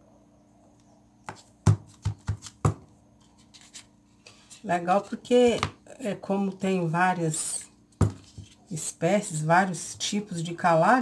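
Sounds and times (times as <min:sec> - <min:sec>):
objects knocking on wooden floor: 0:01.3 - 0:02.9, 0:08.0 - 0:08.4.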